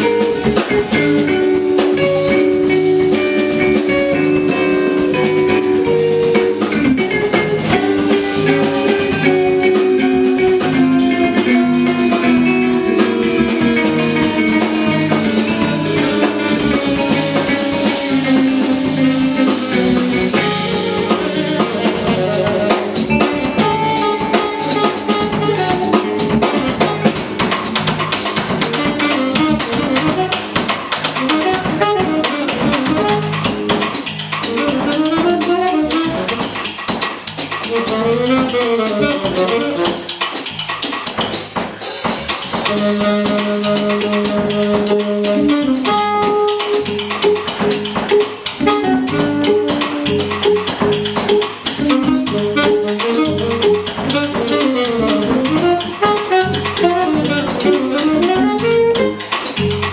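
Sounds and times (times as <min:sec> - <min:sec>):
saxophone: 0:00.0 - 0:41.2, 0:41.8 - 0:59.9
bass guitar: 0:00.0 - 0:59.9
drum kit: 0:00.0 - 0:59.9
electric guitar: 0:00.0 - 0:59.9.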